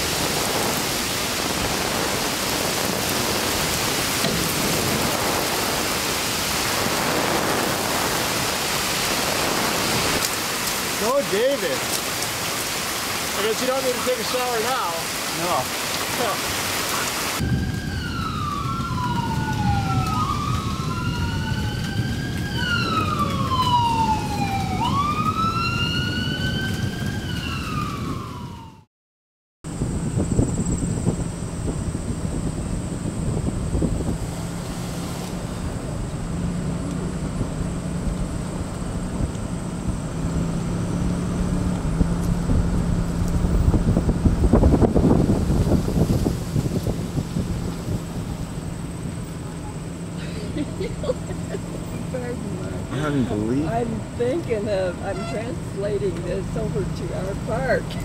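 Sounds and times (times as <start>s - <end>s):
rain hissing: 0.0s - 28.5s, 29.7s - 58.0s
moving vehicle road noise: 0.0s - 28.9s, 29.7s - 58.0s
sirens wailing: 16.2s - 28.9s.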